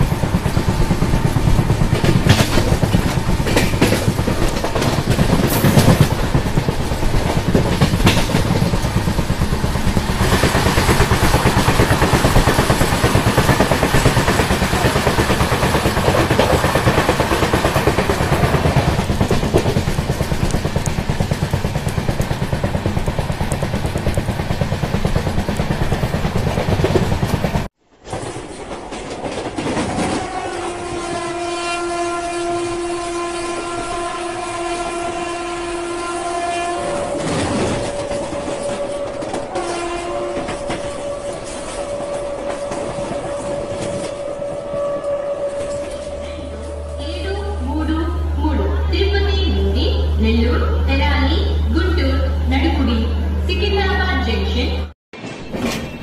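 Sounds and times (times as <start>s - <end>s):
train wheels on track rushing: 0.0s - 54.1s
train horn: 29.8s - 50.2s.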